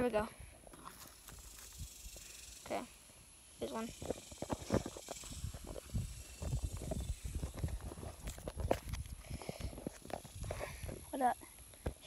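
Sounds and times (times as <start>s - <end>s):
low wind rumble: 1.8s - 11.1s.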